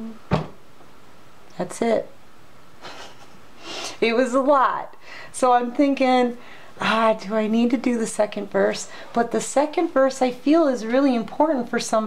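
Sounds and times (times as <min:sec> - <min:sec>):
woman speaking: 0:01.5 - 0:02.2, 0:03.9 - 0:12.0
woman breathing in: 0:05.0 - 0:05.3, 0:06.4 - 0:06.8.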